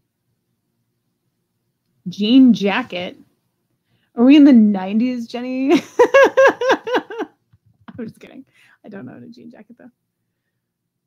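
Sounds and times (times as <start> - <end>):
woman laughing: 5.7 - 7.3.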